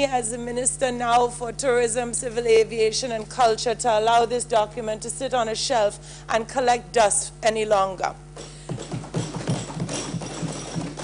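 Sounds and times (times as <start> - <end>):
people thumping wooden desks: 8.4 - 11.0.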